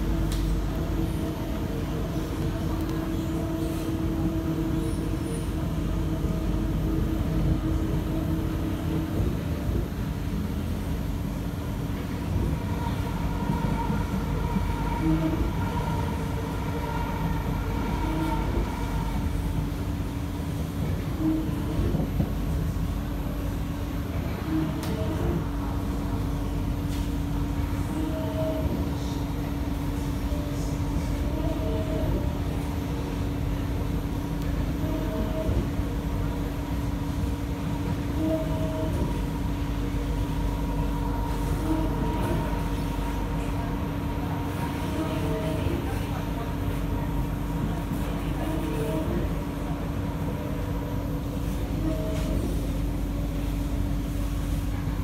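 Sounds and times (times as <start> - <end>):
electric train rumbling: 0.0 - 55.0.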